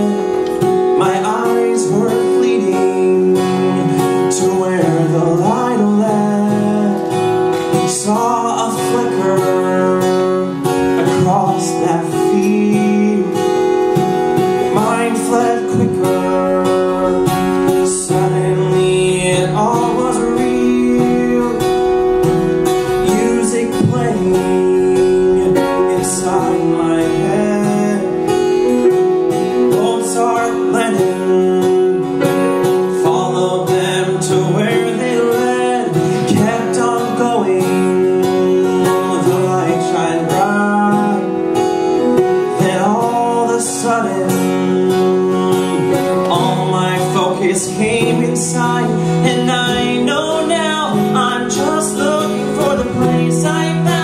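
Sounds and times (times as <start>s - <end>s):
live band accompaniment: 0.0s - 54.0s
man singing: 0.0s - 54.0s.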